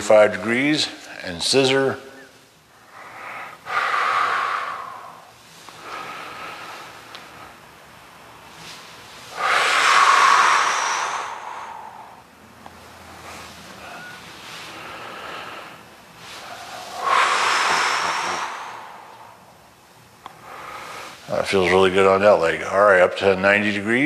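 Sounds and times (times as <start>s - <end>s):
man exhaling heavily: 3.0s - 7.0s, 9.3s - 12.3s, 13.2s - 19.6s.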